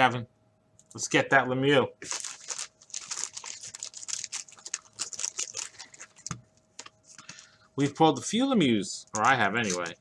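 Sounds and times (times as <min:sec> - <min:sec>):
wax paper wrapper crinkling: 0:02.0 - 0:07.3, 0:09.1 - 0:10.0.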